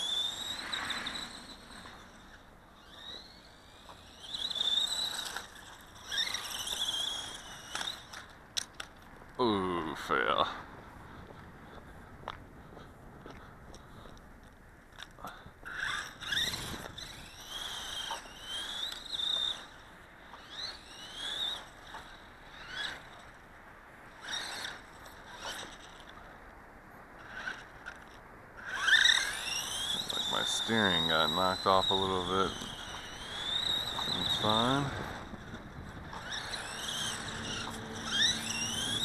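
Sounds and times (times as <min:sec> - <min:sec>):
toy car electric motor whining: 0:00.0 - 0:09.5, 0:15.0 - 0:23.5, 0:24.1 - 0:26.3, 0:27.2 - 0:39.0.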